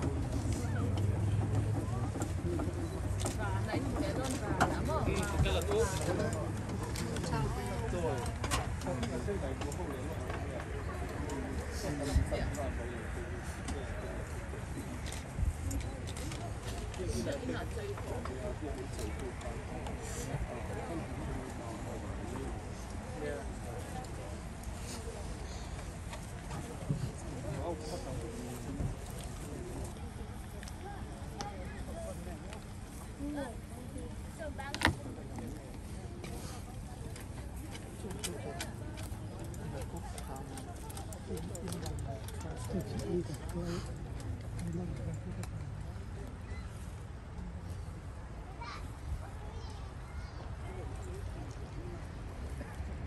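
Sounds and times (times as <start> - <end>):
crowd chatter: 0.0 - 53.0.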